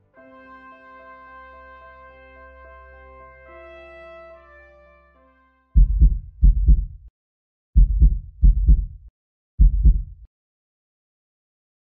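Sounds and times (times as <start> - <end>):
heartbeat thumps: 5.8 - 7.1, 7.8 - 10.3.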